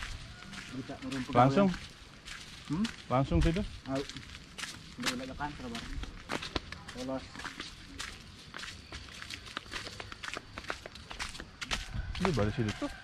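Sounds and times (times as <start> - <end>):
footsteps on dry leaves: 0.0 - 13.0.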